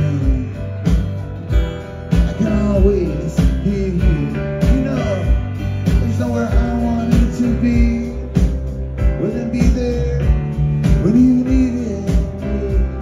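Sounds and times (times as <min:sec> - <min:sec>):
acoustic guitar: 0:00.0 - 0:13.0
drums keeping a steady beat: 0:00.0 - 0:13.0
sliding melodic line: 0:00.0 - 0:13.0.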